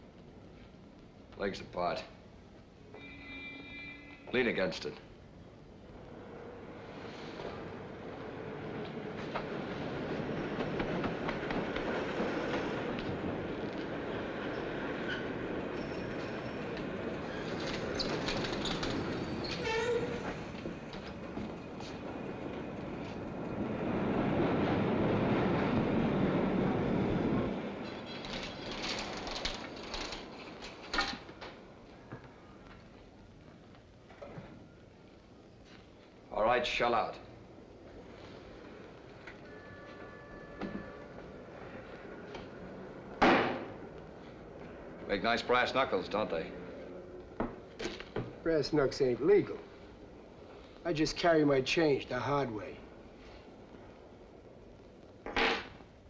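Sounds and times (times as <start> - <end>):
train wheels on rails: 5.9 - 34.7, 35.6 - 54.6.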